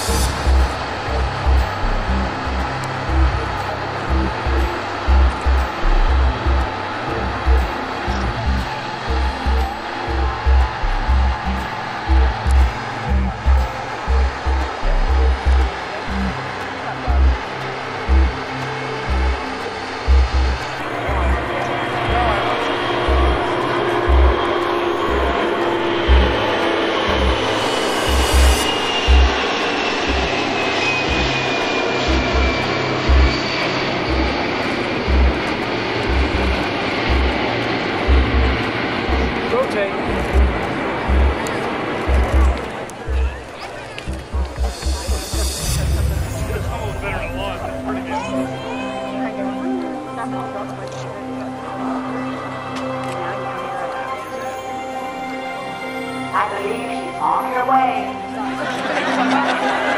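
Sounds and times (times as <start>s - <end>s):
jet engines roaring: 0.0s - 54.0s
thin jet whine falling in pitch: 44.2s - 50.0s.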